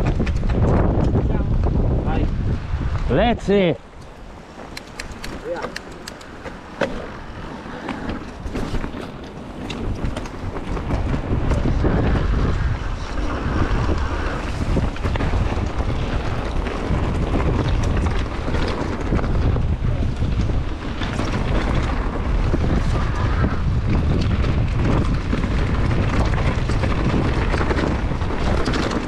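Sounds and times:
bike clicks and rattles: 0.0 - 1.4, 3.8 - 29.0
bike tyres rumbling on dirt: 0.0 - 29.0
wind buffeting microphone: 0.0 - 29.0.

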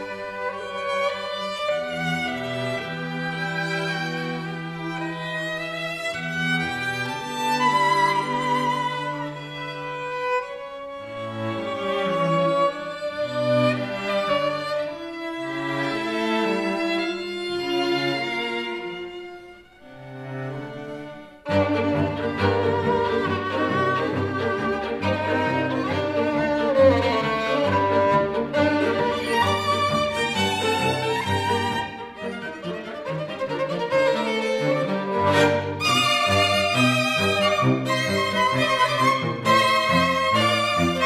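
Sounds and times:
cello line: 0.0 - 41.0
string quartet playing: 0.0 - 41.0.

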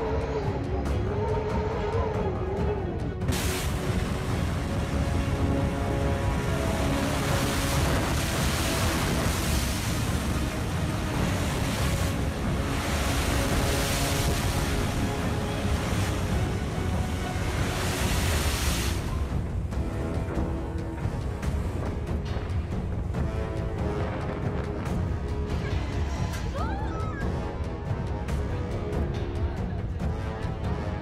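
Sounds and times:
faint background music: 0.0 - 31.0
storm wind: 3.2 - 26.6
heavy surf: 3.3 - 26.3.

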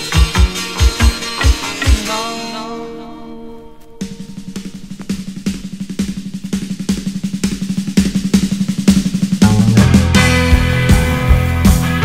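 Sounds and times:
drum beat: 0.0 - 2.3, 4.0 - 12.0
new wave rock band playing: 0.0 - 12.0.

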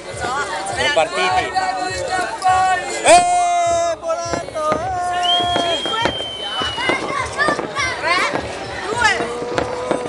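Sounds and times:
voices: 0.0 - 10.0
fireworks bangs and pops: 3.1 - 10.0
whistling fireworks: 4.3 - 10.0.

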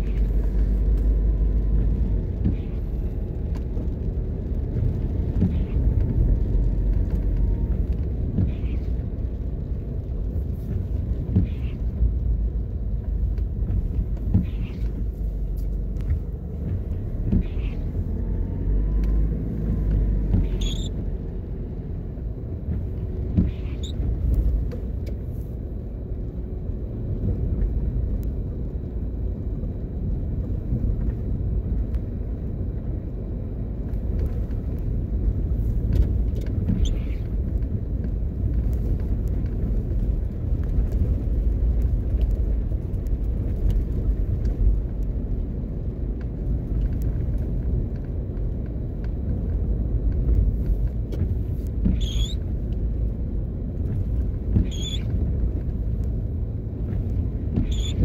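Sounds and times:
car engine and tyres rumbling: 0.0 - 58.0.

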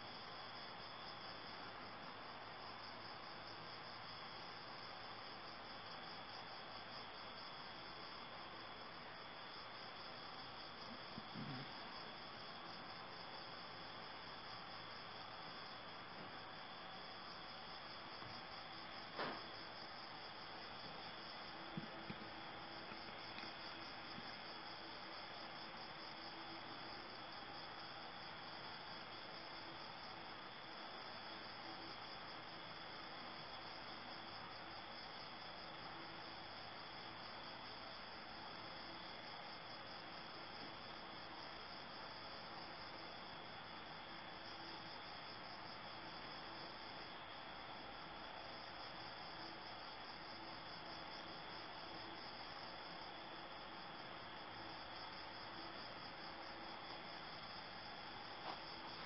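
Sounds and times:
crickets chirping: 0.0 - 59.0
faint constant hiss: 0.0 - 59.0.

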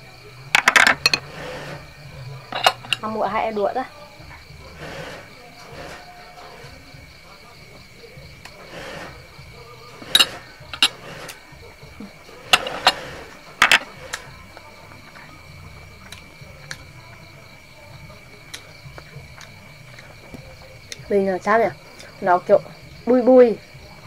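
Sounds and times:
crickets chirring: 0.0 - 24.0
cutlery clicks and knocks: 0.6 - 1.3, 2.5 - 3.0, 12.5 - 14.0
knife and fork scraping: 0.6 - 3.1, 4.7 - 7.0, 8.5 - 11.5, 12.3 - 14.3.

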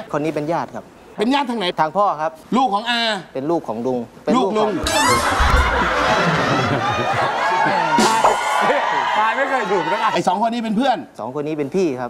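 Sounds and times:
studio audience laughing: 4.8 - 9.0.

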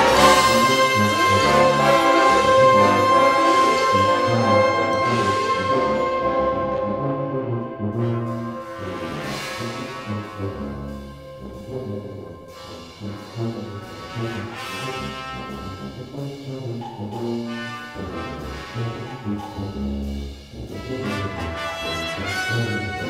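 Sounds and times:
brass band playing: 0.0 - 23.0.

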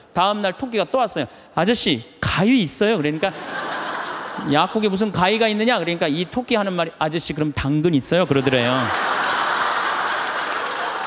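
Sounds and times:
large audience laughing: 3.0 - 6.3, 8.2 - 11.0.

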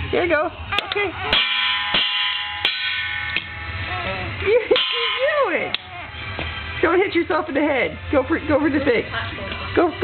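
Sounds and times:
stick striking metal pot: 1.3 - 3.7, 4.7 - 6.8.

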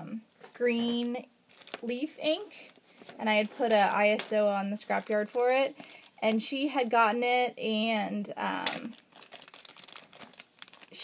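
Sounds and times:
packaging crinkling: 1.5 - 2.0, 2.6 - 6.2, 8.7 - 11.0.

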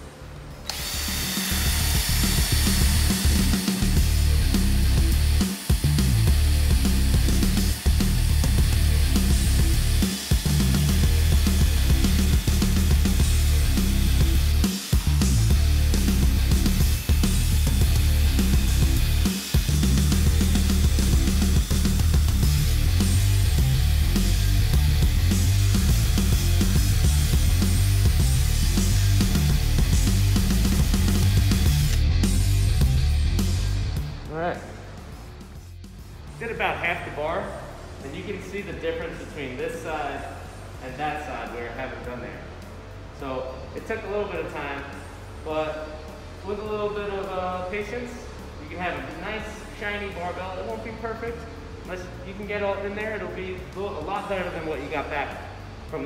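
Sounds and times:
drill wire brush scrubbing steel: 0.7 - 28.8
rock music with heavy beat: 1.7 - 34.4.

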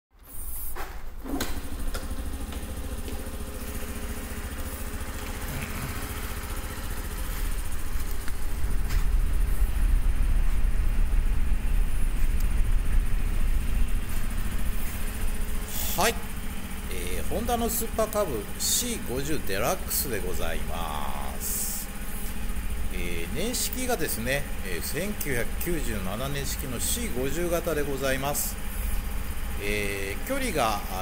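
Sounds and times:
motorcycle engine idling: 0.9 - 31.0.

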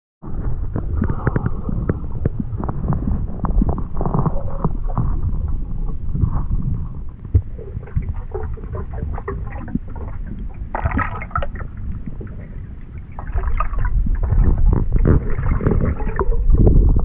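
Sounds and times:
muffled underwater river current: 0.2 - 17.0
small underwater clicks and knocks: 0.4 - 17.0.

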